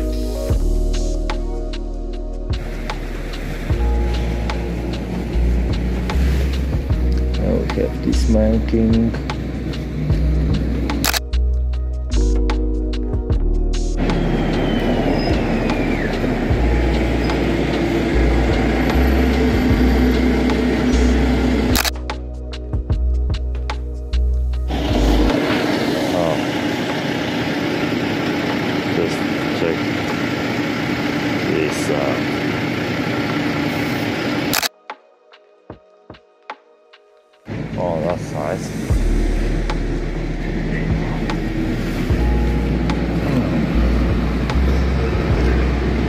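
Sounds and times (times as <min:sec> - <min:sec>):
background music: 0:00.0 - 0:46.0
city street noise: 0:02.5 - 0:12.6, 0:13.7 - 0:34.7, 0:37.5 - 0:46.0
bus driving on cobblestones: 0:02.6 - 0:07.9, 0:09.0 - 0:11.0, 0:14.0 - 0:21.8, 0:24.7 - 0:34.6, 0:40.2 - 0:46.0.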